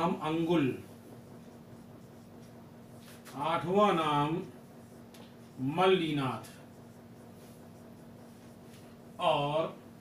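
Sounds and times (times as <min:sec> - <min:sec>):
steady low hum: 0:00.0 - 0:10.0
marker scratching on whiteboard: 0:00.2 - 0:09.3.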